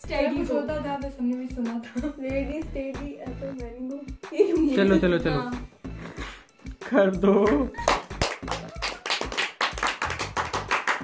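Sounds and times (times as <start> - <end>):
group clapping: 7.4 - 11.0.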